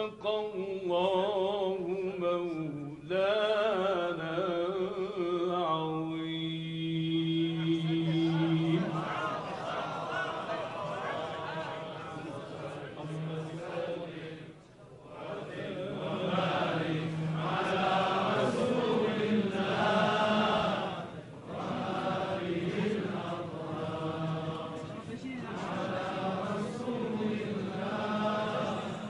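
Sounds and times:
devotional chanting voice: 0.0s - 29.0s.

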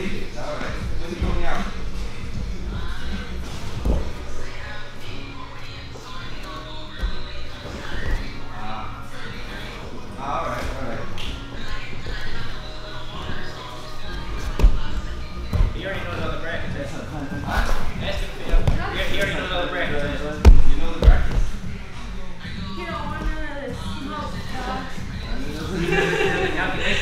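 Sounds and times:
background music: 0.0s - 27.0s.

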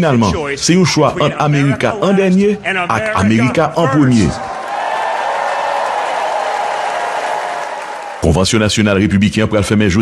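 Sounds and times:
crowd applauding and cheering: 4.4s - 8.4s.

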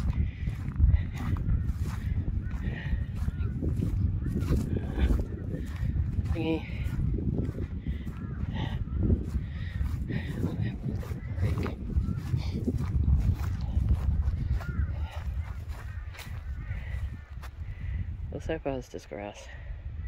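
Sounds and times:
birds calling: 0.0s - 19.4s
wind buffeting microphone: 0.0s - 20.0s.

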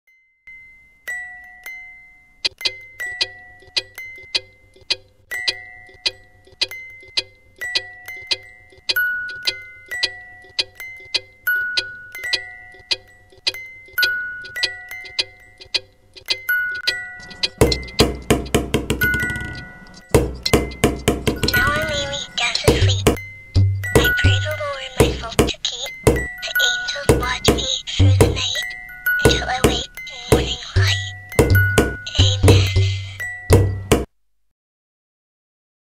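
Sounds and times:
chiming bell-like melody: 0.1s - 4.5s, 7.6s - 15.6s, 16.4s - 33.9s
rattling low knocks: 17.2s - 26.3s, 29.3s - 32.8s, 33.5s - 34.1s.

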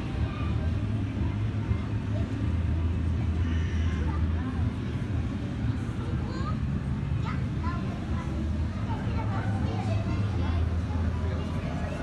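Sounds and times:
indistinct chatter: 0.0s - 12.0s
steady low hum: 0.0s - 12.0s.

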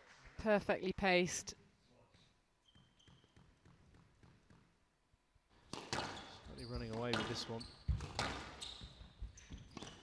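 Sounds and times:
squash ball knocks: 5.7s - 6.2s, 6.8s - 8.6s.

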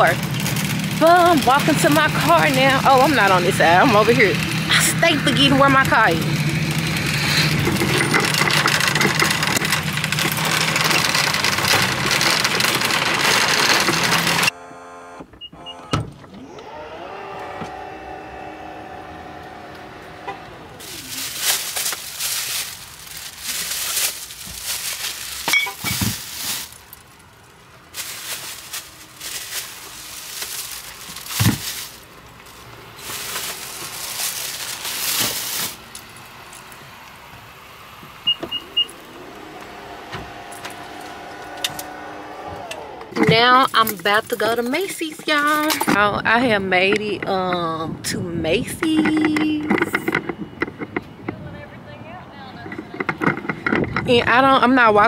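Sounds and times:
plastic bags rustling: 0.0s - 14.5s, 19.3s - 37.2s
shopping cart rattling on pavement: 0.0s - 14.5s, 20.5s - 36.8s, 38.6s - 51.5s, 52.3s - 55.0s
liftgate motor whine: 0.2s - 21.2s, 32.3s - 43.6s
knocks of bags loaded: 20.8s - 26.9s, 28.0s - 32.1s.

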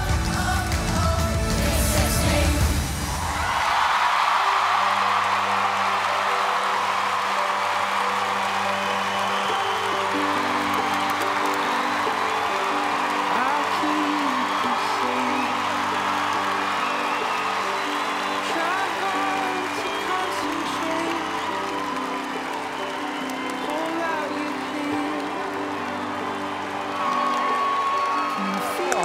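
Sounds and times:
background music with held notes: 0.0s - 3.4s, 4.6s - 29.0s
audience applauding and cheering: 0.0s - 29.0s.

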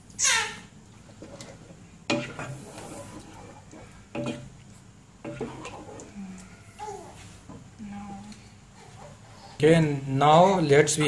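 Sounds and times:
wooden spoon scraping a pan: 1.0s - 6.2s
spoon knocking against pan: 2.1s - 2.5s, 4.1s - 4.5s.

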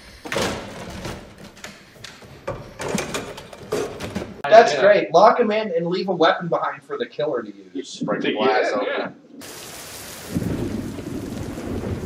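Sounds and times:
glass doors rattling and knocking: 0.2s - 4.4s.

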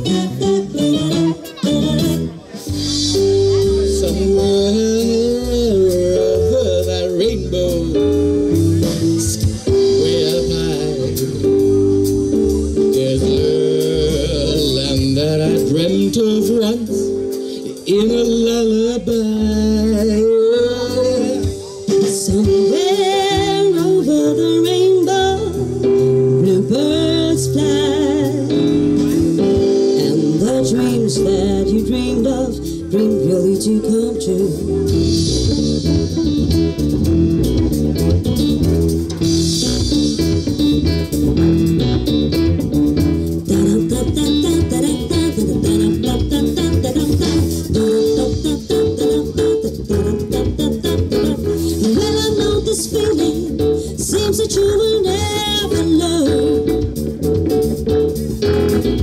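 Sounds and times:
person singing: 0.0s - 36.2s, 43.3s - 57.1s
live band playing: 0.0s - 59.0s.

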